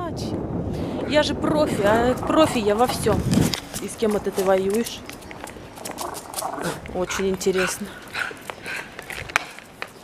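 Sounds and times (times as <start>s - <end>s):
dog growling: 5.8s - 8.9s.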